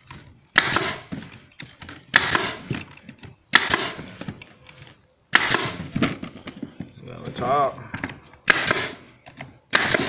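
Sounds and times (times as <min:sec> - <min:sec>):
nailer firing into wood: 0:00.5 - 0:01.2, 0:02.1 - 0:02.8, 0:03.5 - 0:04.1, 0:05.3 - 0:06.2, 0:08.4 - 0:09.0, 0:09.7 - 0:10.0.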